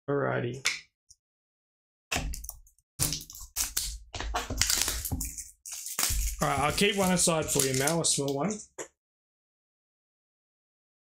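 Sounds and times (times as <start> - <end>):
cellophane wrapping crinkling: 3.0 - 8.3.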